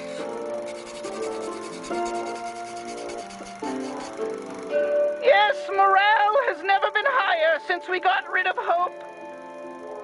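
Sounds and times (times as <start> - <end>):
pencil scratching on paper: 0.0 - 4.3
background music: 0.0 - 10.0.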